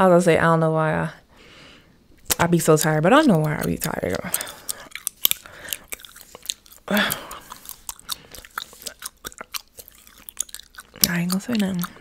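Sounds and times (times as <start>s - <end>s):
gum chewing clicks and smacks: 2.1s - 12.0s.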